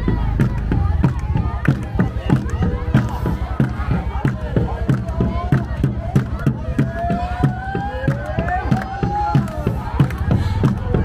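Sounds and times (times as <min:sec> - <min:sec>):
crowd singing: 0:00.0 - 0:11.0
drum beating steady rhythm: 0:00.0 - 0:11.0.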